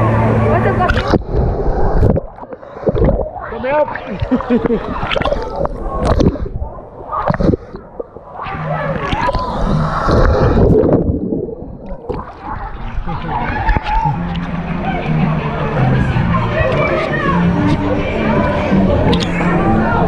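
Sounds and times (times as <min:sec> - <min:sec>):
water gurgling: 0:00.0 - 0:20.0
water sloshing and splashing: 0:00.6 - 0:15.2.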